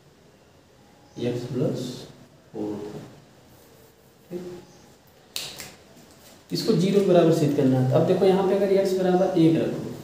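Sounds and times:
man speaking: 1.2 - 3.2, 4.3 - 4.7, 6.5 - 10.0.

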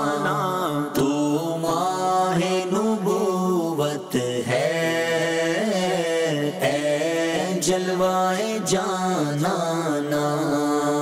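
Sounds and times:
voices chanting a slow melody: 0.0 - 11.0.

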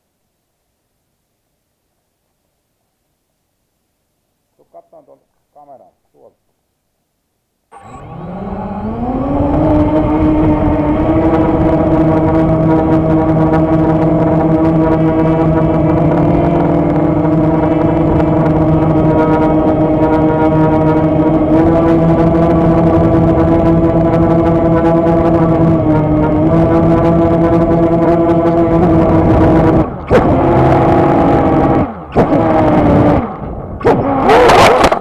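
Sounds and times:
drone motors and propellers humming: 7.7 - 35.0.

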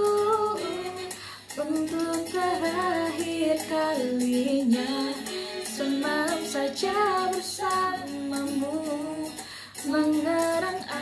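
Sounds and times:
woman singing pop ballad: 0.0 - 11.0.

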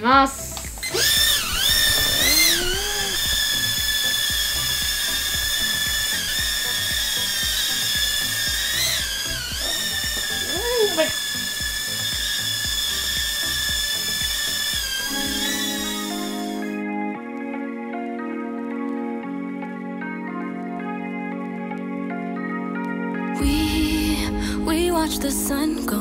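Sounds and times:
music: 0.0 - 26.0
toy drone propellers whining: 0.4 - 16.8.

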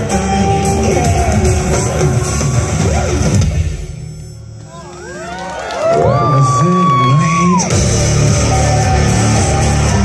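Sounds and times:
live rock band playing: 0.0 - 4.2, 7.6 - 10.0
crowd whooping and cheering: 4.7 - 10.0.

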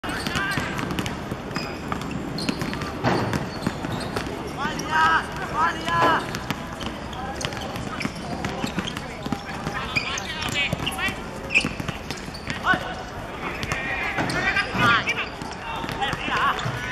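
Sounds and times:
people shouting and calling: 4.6 - 6.3, 12.5 - 16.9.

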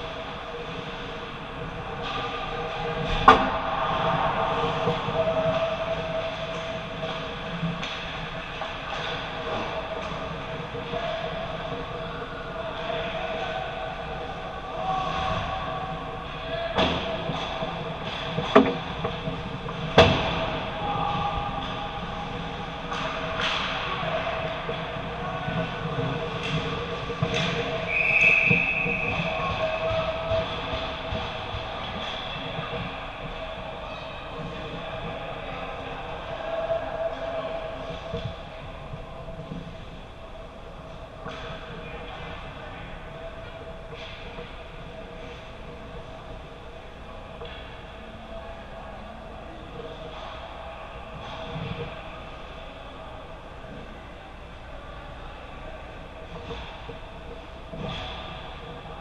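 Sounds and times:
referee's whistle: 27.9 - 29.4.

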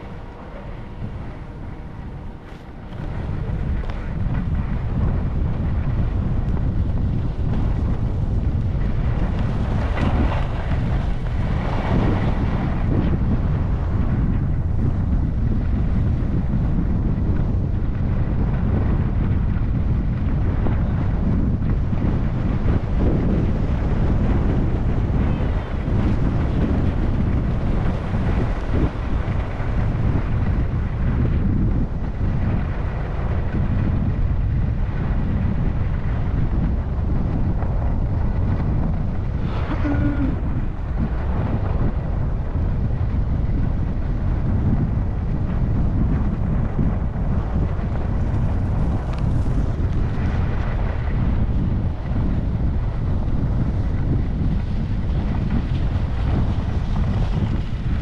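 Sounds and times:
wind buffeting microphone: 0.0 - 58.0
skis sliding over snow: 6.6 - 13.2, 47.2 - 58.0.

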